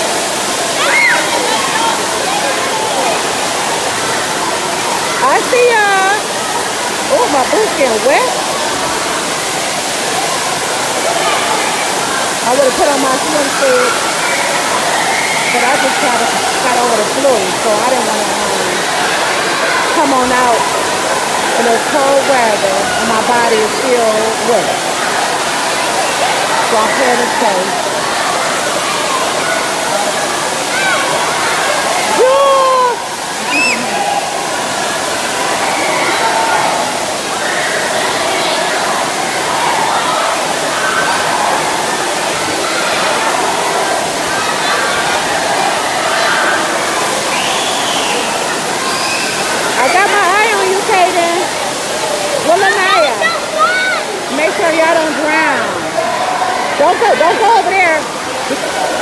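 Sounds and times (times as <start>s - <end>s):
children shouting and calling: 0.0s - 59.0s
water pouring and splashing: 0.0s - 59.0s.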